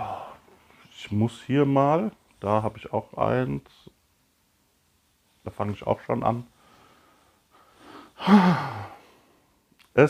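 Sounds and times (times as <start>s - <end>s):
man sighing: 0.0s - 0.4s, 7.9s - 9.2s.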